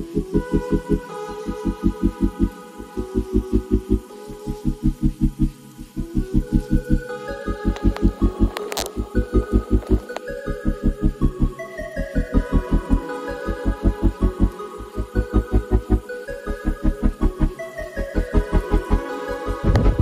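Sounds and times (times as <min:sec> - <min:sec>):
pulsing bass beat: 0:19.6 - 0:20.0.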